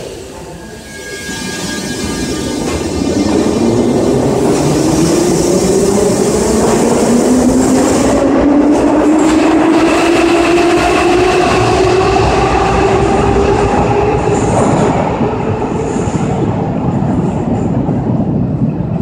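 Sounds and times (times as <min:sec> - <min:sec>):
train wheels rumbling on track: 0:00.0 - 0:19.0.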